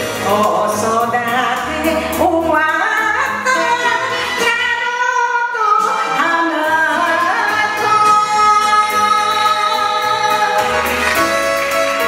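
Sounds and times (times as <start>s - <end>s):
karaoke backing track: 0.0s - 12.0s
woman singing into a microphone: 0.0s - 12.0s.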